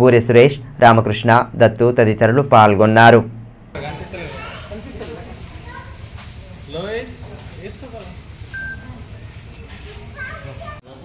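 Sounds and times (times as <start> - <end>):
faint chatter of people: 3.8 - 11.0.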